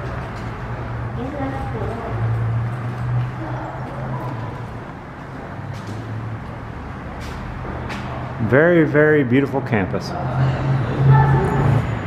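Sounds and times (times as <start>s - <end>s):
low rumble of road traffic: 0.0s - 12.0s.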